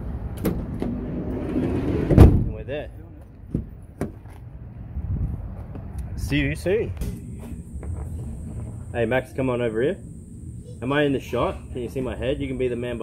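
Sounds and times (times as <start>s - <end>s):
sliding door rolling along track: 0.4s - 2.3s
door slamming shut: 2.0s - 2.6s.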